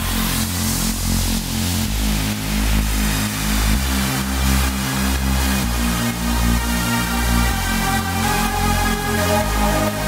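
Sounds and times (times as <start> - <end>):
house music with pulsing synth bass: 0.0 - 10.0.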